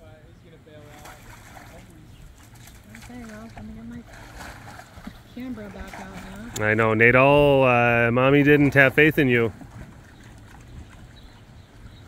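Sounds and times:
water splashing and sloshing: 0.7 - 12.0.

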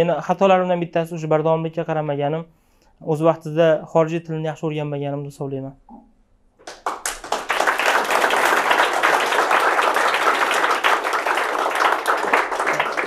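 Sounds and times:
audience applauding: 6.6 - 13.0.

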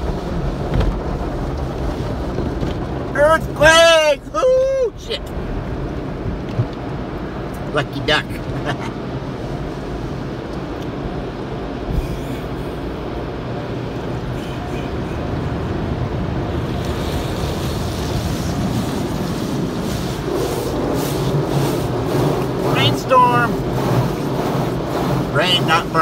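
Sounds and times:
water spraying on car body: 0.0 - 26.0.

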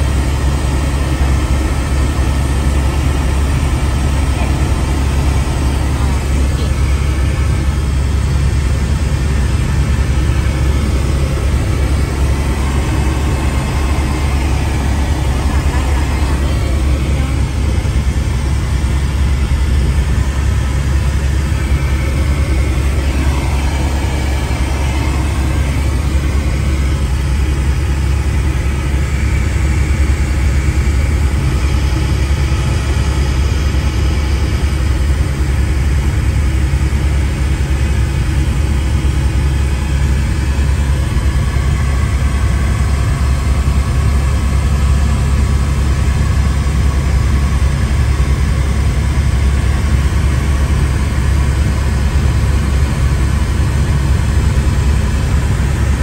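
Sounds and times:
helicopter rotor and engine drone: 0.0 - 56.0.

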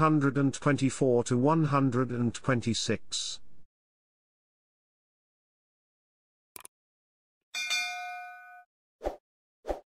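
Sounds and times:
notification bell ding: 7.6 - 8.7.

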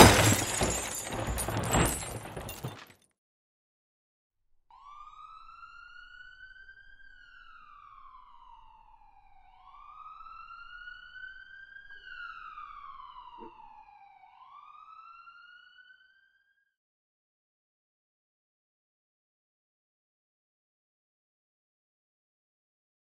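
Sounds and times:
emergency siren wailing: 4.7 - 16.6.

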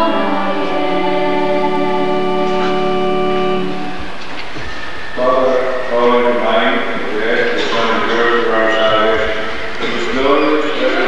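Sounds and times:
priest praying: 0.0 - 4.0, 5.2 - 11.0
tape hiss: 0.0 - 11.0.

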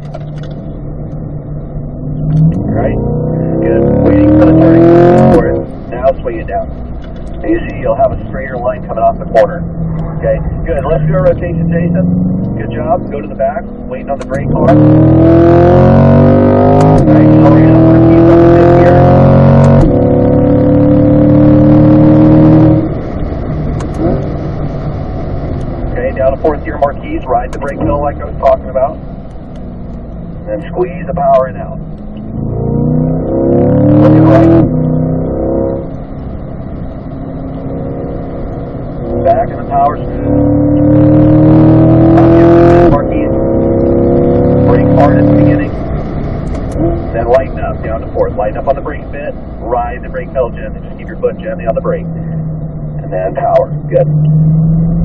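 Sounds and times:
car engine revving: 0.0 - 55.0
gear upshifts: 0.0 - 55.0.

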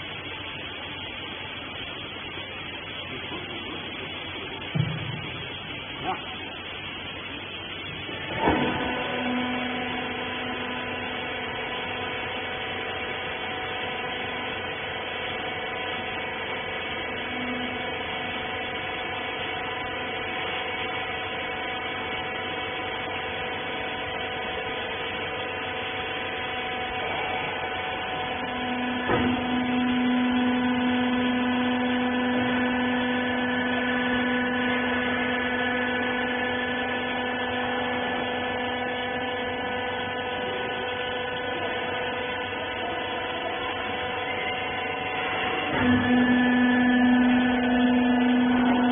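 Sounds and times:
machinery electric hum: 0.0 - 48.9.

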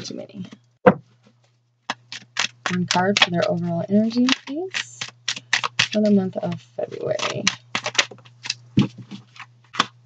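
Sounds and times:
cards snapping and tapping: 1.9 - 10.0
steady low hum: 2.0 - 10.0.

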